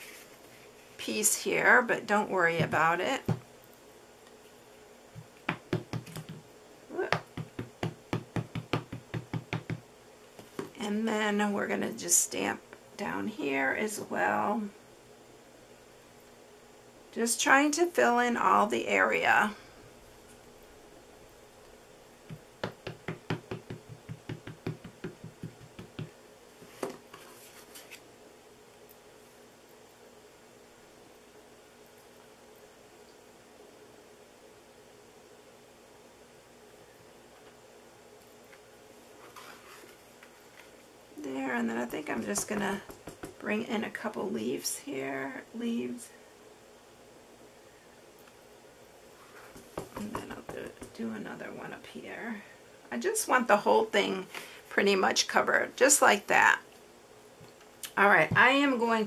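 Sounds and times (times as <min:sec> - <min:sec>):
ink pad tapping on rubber stamp: 0:05.5 - 0:06.4, 0:07.1 - 0:09.8, 0:22.3 - 0:26.1, 0:42.4 - 0:43.4, 0:49.6 - 0:51.0.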